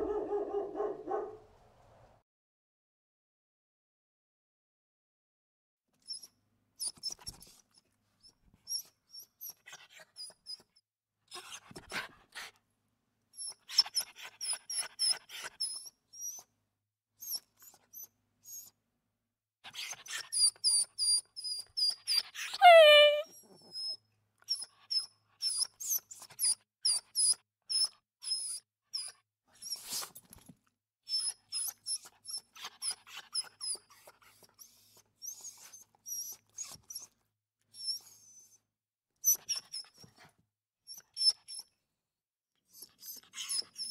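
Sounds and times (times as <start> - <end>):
dog whimpering: 22.5 - 23.9, 42.8 - 43.9.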